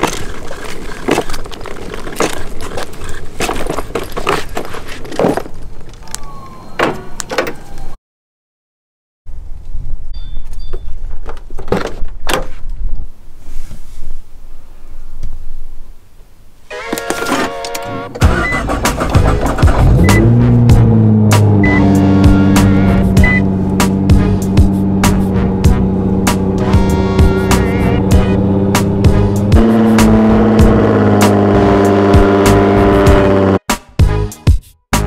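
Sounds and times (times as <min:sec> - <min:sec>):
car engine starting and idling: 0:17.8 - 0:33.6
background music with beat: 0:18.2 - 0:35.0.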